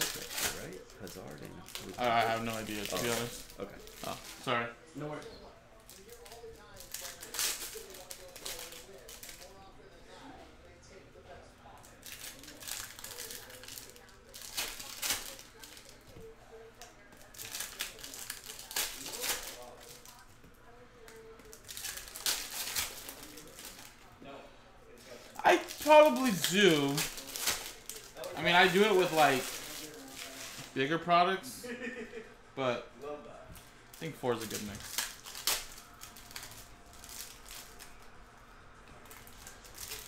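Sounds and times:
foil wrappers crinkling and tearing: 0:00.0 - 0:04.6, 0:05.8 - 0:09.6, 0:11.7 - 0:24.1, 0:25.0 - 0:30.8, 0:33.9 - 0:38.2, 0:39.0 - 0:40.0
cards being handled: 0:25.4 - 0:30.8.

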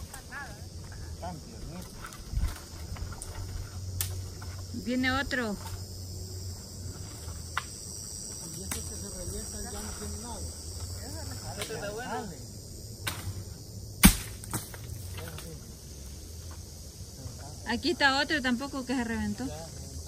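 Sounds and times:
insects buzzing: 0:00.0 - 0:20.0
sharp loud knock: 0:14.0 - 0:14.6.

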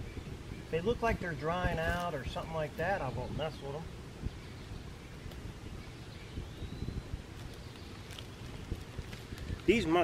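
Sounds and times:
wind rumble on microphone: 0:00.0 - 0:10.0
rustling dry leaf litter: 0:07.2 - 0:10.0.

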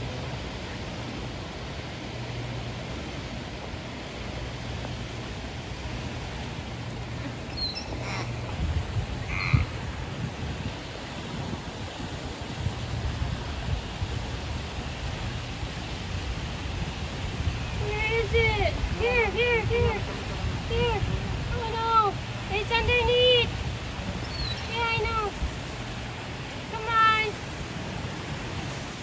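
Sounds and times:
water rushing: 0:00.0 - 0:29.0
bird-like calls: 0:07.1 - 0:10.0, 0:24.1 - 0:25.1.

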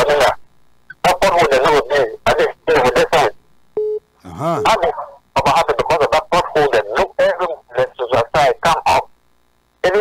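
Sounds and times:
telephone beep: 0:03.8 - 0:04.0
drawn-out voiced sound: 0:04.2 - 0:04.8
voices over phone line: 0:04.2 - 0:09.1.

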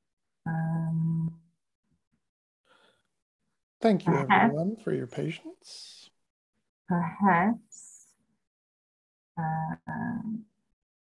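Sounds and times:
person saying um: 0:03.9 - 0:06.0.

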